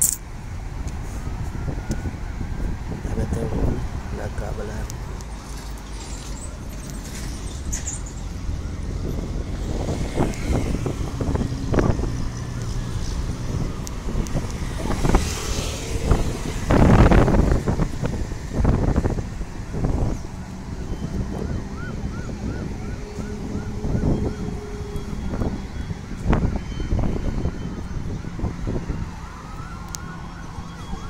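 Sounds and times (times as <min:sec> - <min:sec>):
road traffic rumble: 0:00.0 - 0:31.0
wind buffeting microphone: 0:00.2 - 0:05.4, 0:07.6 - 0:31.0.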